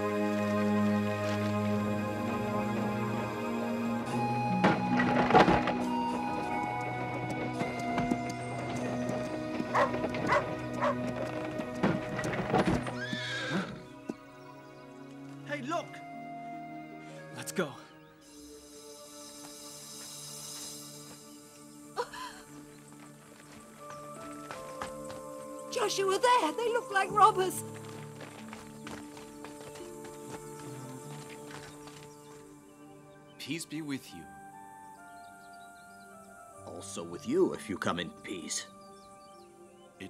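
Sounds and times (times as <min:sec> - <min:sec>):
background music: 0:00.0 - 0:40.0
hooves clip-clopping at a walk: 0:04.6 - 0:14.3, 0:22.5 - 0:32.6
horse whinnying: 0:12.6 - 0:13.9.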